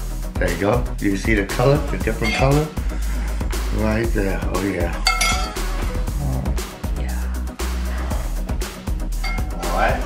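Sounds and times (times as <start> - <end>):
background music with bass line: 0.0 - 10.0
metal spoon clinking on plate: 5.0 - 5.7, 9.2 - 9.5.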